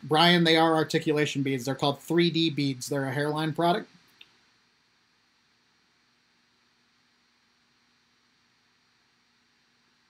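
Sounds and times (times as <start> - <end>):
faint steady hiss: 0.0 - 10.0
low electrical hum: 0.0 - 10.0.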